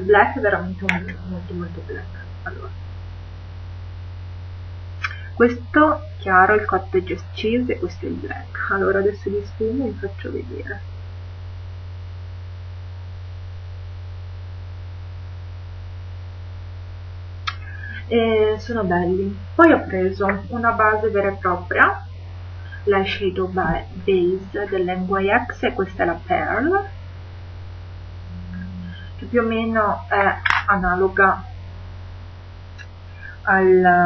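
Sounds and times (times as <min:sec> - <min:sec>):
faint hiss: 0:00.0 - 0:34.0
low electrical mains hum: 0:00.0 - 0:34.0.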